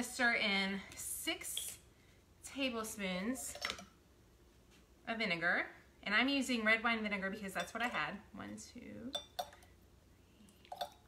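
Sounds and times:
spoon clinking against container: 9.1s - 9.6s.

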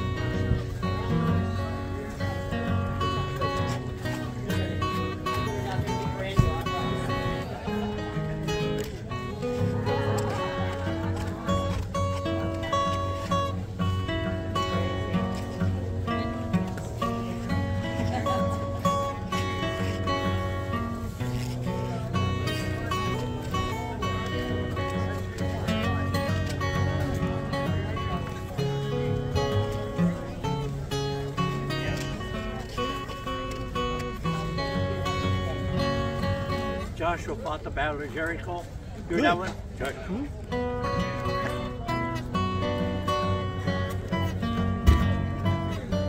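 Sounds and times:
fingerstyle acoustic guitar: 0.0s - 46.0s.

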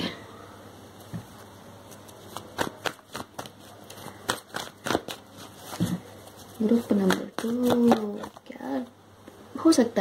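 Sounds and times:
cards being shuffled: 1.3s - 8.5s.

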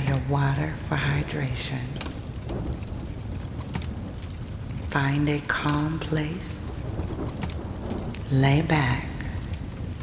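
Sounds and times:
low thunder rumble: 0.0s - 10.0s
steady rain: 0.0s - 10.0s.

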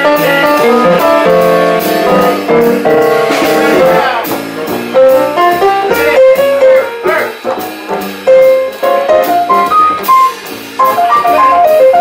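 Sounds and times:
jazz band playing: 0.0s - 12.0s
piano: 0.0s - 12.0s.

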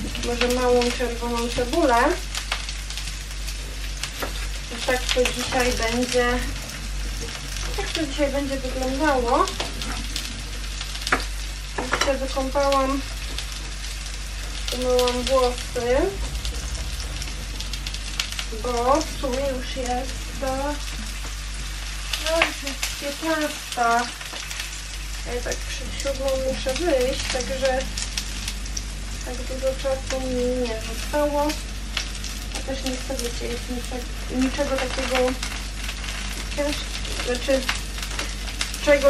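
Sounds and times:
vegetables sizzling in frying pan: 0.0s - 39.0s.

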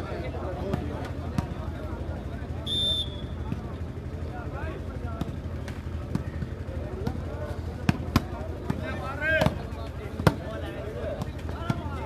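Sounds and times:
background crowd noise: 0.0s - 12.0s.

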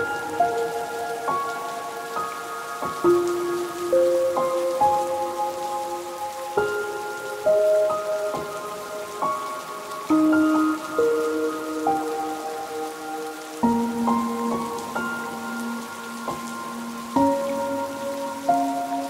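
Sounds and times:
slow melody of ringing notes: 0.0s - 19.0s
steady rain: 0.0s - 19.0s.

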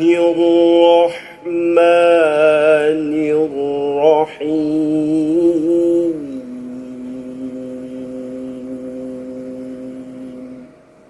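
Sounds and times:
man reciting sung note: 0.0s - 10.8s.

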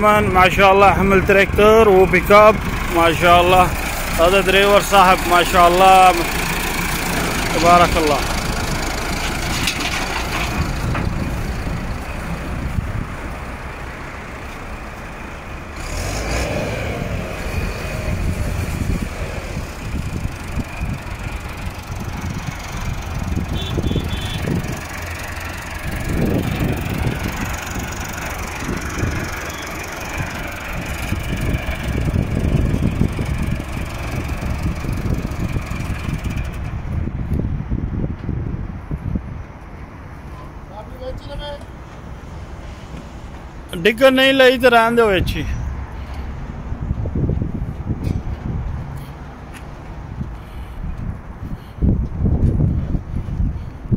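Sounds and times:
tractor diesel engine running: 0.0s - 37.8s.

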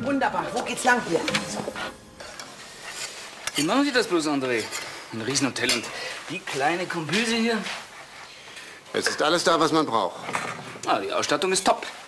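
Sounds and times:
pots and utensils clinking: 0.0s - 7.4s, 8.5s - 10.6s.

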